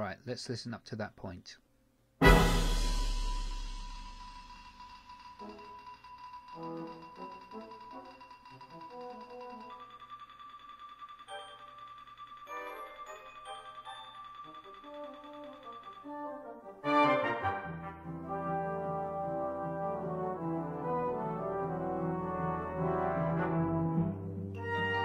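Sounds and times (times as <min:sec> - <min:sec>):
held high brass note: 0:02.2 - 0:04.6
loud hit ringing: 0:02.2 - 0:05.4.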